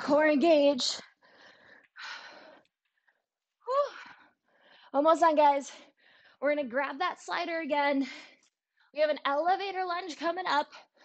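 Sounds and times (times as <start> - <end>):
woman breathing hard: 1.1 - 5.0.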